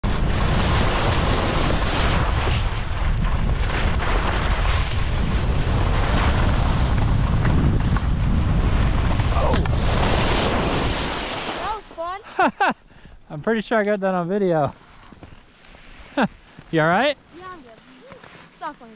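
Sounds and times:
wind buffeting microphone: 0:00.0 - 0:12.0
skis running over snow: 0:00.2 - 0:12.1, 0:14.0 - 0:18.9.

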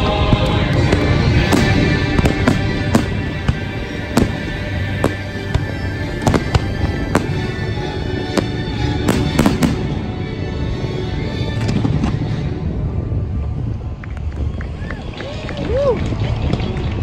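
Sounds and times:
fireworks bursting: 0:00.0 - 0:10.1
steady music: 0:00.0 - 0:14.0.

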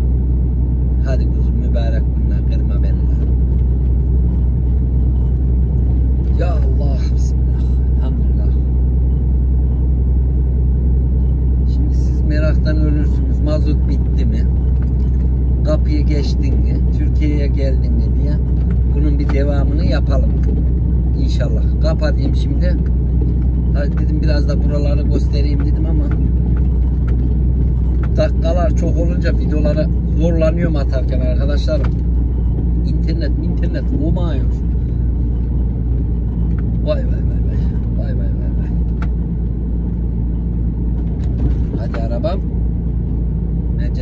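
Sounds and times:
truck engine drone from inside cab: 0:00.0 - 0:44.0.

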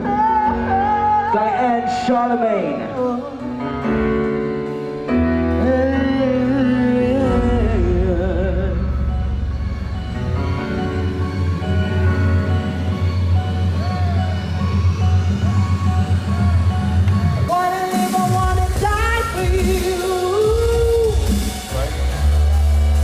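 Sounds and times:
woman singing into a microphone: 0:00.0 - 0:03.6, 0:05.4 - 0:09.4, 0:17.5 - 0:21.3
live band playing: 0:00.0 - 0:23.0
strong bass line: 0:05.7 - 0:17.5.

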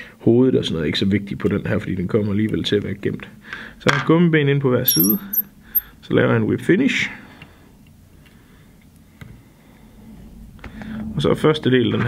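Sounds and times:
sharp click: 0:04.9 - 0:05.5.

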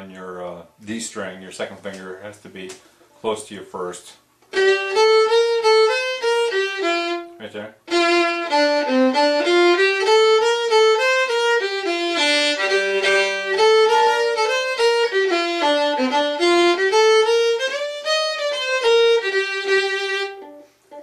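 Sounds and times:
solo fiddle melody: 0:04.5 - 0:21.0
low drone note: 0:12.4 - 0:15.0.

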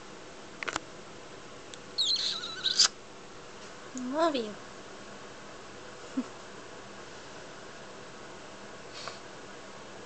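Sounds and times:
cockatoo squeaky chirp: 0:02.0 - 0:03.0.

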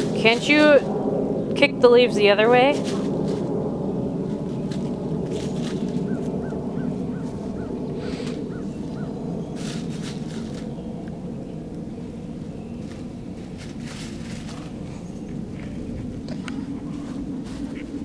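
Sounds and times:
hens scratching in dry leaves: 0:00.0 - 0:18.0
low rumble: 0:00.0 - 0:18.0.

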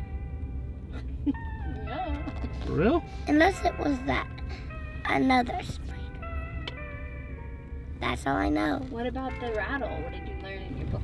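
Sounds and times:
background music: 0:00.0 - 0:11.0
car driving rumble: 0:00.0 - 0:11.0.

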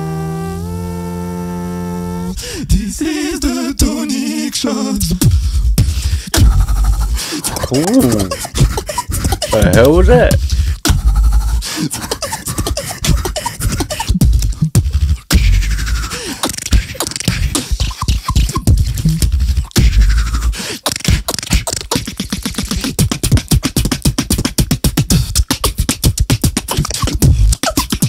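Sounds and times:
beatboxing into microphones: 0:02.4 - 0:28.0
deep bass hit: 0:05.2 - 0:07.2
gliding vocal sounds: 0:06.4 - 0:10.4.

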